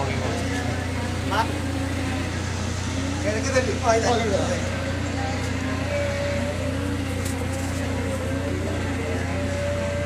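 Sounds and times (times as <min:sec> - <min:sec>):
machine humming: 0:00.0 - 0:10.0.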